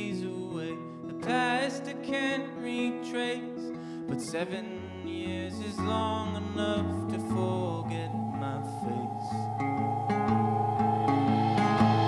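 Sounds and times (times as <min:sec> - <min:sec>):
person singing: 0:00.0 - 0:12.0
plucked guitar notes: 0:05.9 - 0:12.0
held tone: 0:06.9 - 0:12.0.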